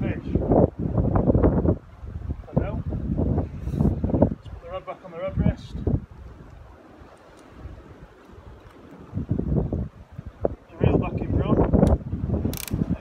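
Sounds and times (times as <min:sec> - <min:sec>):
fishing reel ratcheting: 0:12.5 - 0:12.8.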